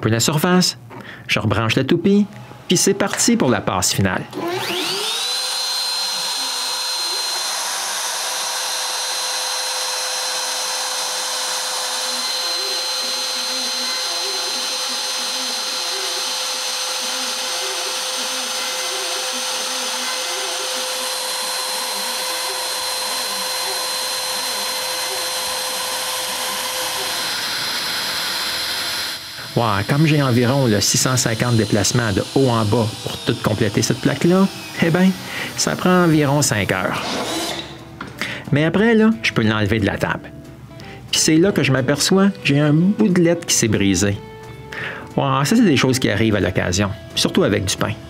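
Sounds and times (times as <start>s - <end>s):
router spindle high whine: 4.3s - 38.5s.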